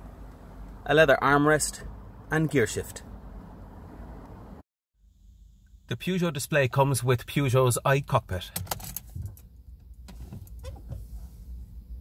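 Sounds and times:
low hum in car cabin: 0.0s - 12.0s.

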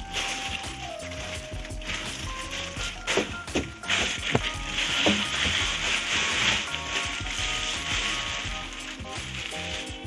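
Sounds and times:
background music with held notes: 0.0s - 10.0s
plastic bag rustling and crinkling: 0.0s - 10.0s.

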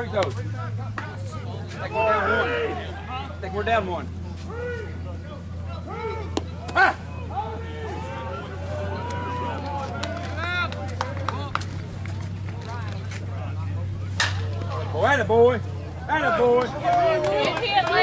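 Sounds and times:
players chatter and shouts: 0.0s - 18.0s
steady low hum: 0.0s - 18.0s
bat hitting softball: 14.1s - 14.8s.

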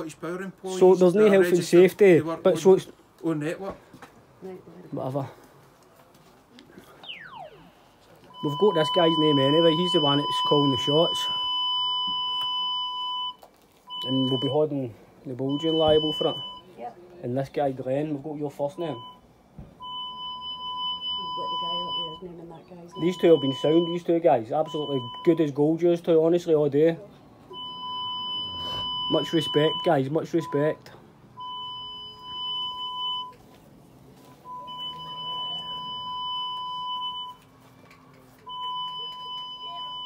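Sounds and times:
high buzzy electronic beep: 7.0s - 7.8s, 27.6s - 29.8s
high electronic beep: 7.0s - 14.6s, 27.5s - 30.7s.

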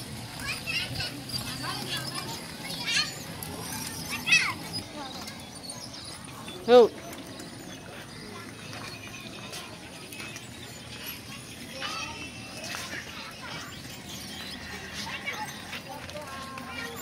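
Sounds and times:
background chatter of voices: 0.0s - 17.0s
steady outdoor hum: 0.0s - 17.0s.

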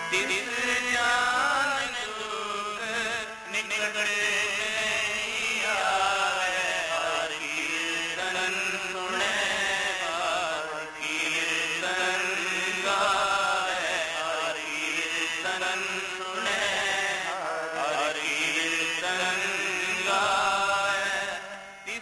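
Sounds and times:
harmonium chords: 0.0s - 22.0s
man singing: 0.0s - 22.0s
tabla: 0.0s - 22.0s.

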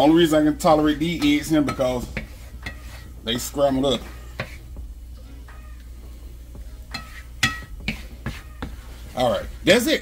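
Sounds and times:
wooden spoon scraping a pan: 0.0s - 5.6s, 6.4s - 10.0s.

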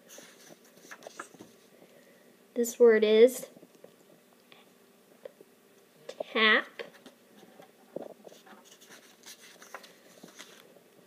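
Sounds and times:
paper card rustling: 0.1s - 1.6s, 8.3s - 10.7s.

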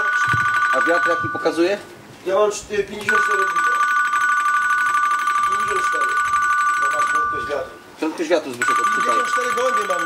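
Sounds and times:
electronic ringer trilling: 0.0s - 1.8s, 3.1s - 7.9s, 8.6s - 10.0s.

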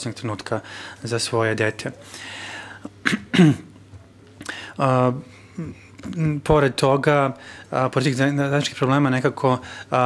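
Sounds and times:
man clearing his throat: 2.9s - 3.8s.

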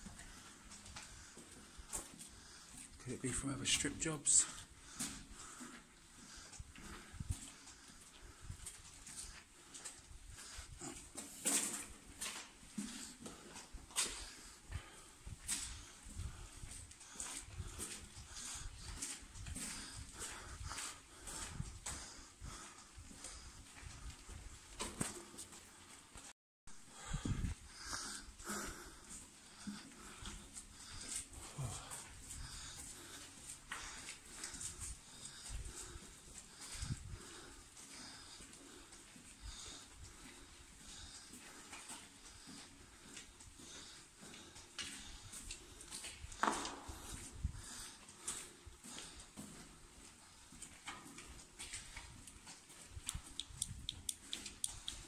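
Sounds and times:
person panting: 0.0s - 26.1s, 26.7s - 55.0s
uneven footsteps on tunnel floor: 0.0s - 55.0s.

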